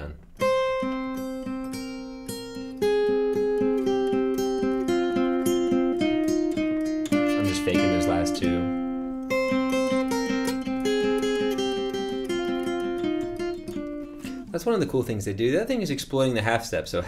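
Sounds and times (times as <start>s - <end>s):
acoustic guitar scale exercise: 0.0s - 17.0s.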